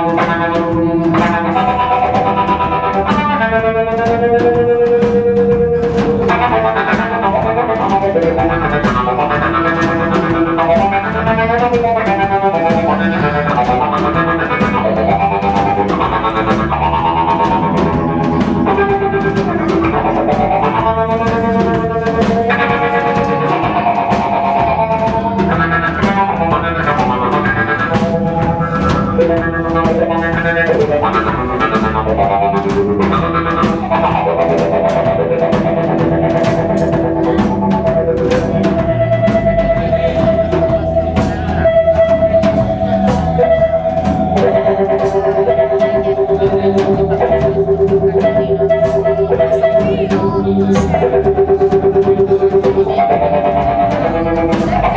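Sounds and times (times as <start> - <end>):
bass guitar: 0.0 - 54.9
drum kit: 0.0 - 54.9
electric guitar: 0.0 - 54.9.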